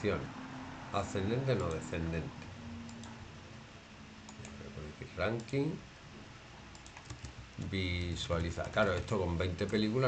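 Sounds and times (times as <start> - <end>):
computer mouse clicks: 1.5 - 2.2, 2.8 - 3.2, 4.3 - 4.6, 6.7 - 9.9.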